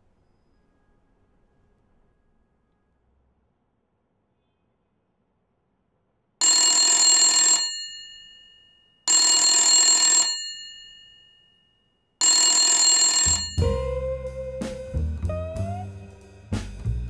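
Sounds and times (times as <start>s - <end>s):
telephone bell ringing: 6.4s - 13.7s
music: 13.6s - 17.0s.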